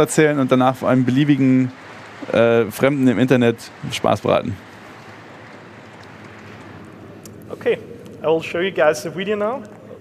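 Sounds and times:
low hiss: 0.0s - 10.0s.

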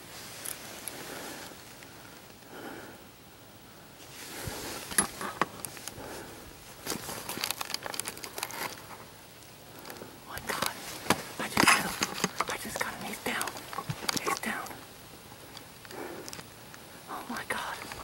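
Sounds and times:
dry crinkling and rustling: 4.0s - 18.0s
soft whispering: 9.7s - 14.9s, 17.0s - 18.0s.

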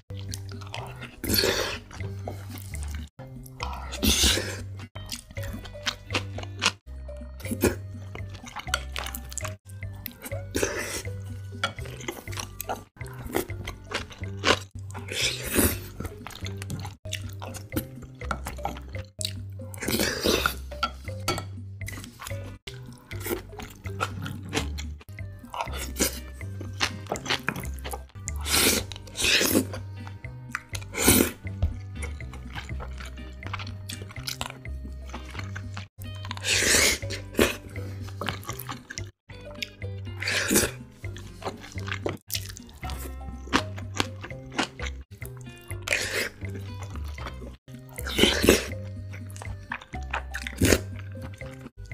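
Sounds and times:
wet chewing and slurping: 0.0s - 21.2s, 21.8s - 51.9s
background music with bass line: 0.0s - 51.9s.

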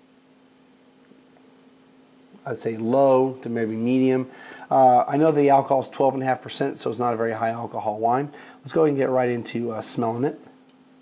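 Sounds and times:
faint steady hum: 0.0s - 11.0s
light hiss: 0.0s - 11.0s.

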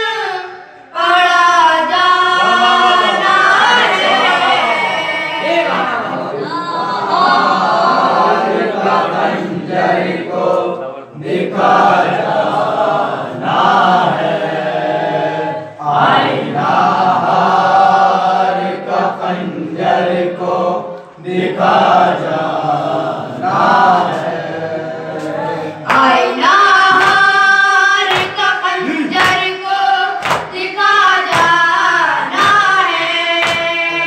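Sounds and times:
boys chanting a lament: 0.0s - 34.0s.

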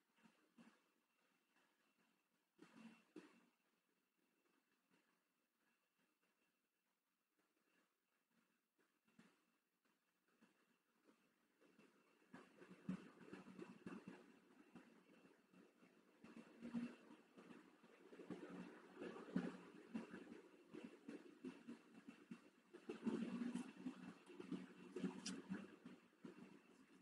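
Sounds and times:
faint rustles and soft taps: 0.0s - 27.0s.

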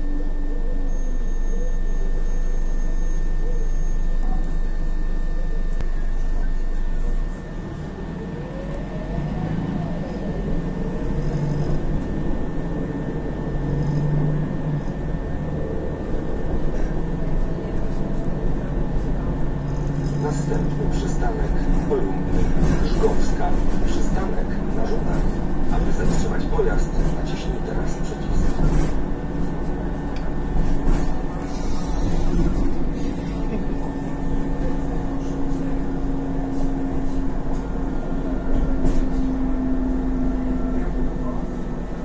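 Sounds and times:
bus engine: 0.0s - 42.0s
steady hum: 28.7s - 40.5s.

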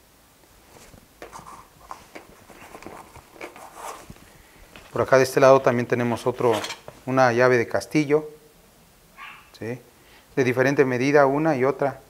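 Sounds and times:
fabric rustling: 0.4s - 7.1s.

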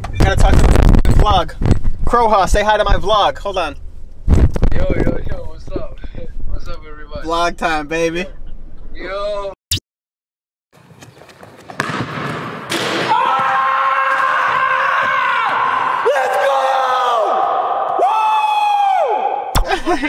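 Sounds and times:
basketball knocks: 11.7s - 13.5s
man yelling in echoing gym: 13.0s - 19.5s.

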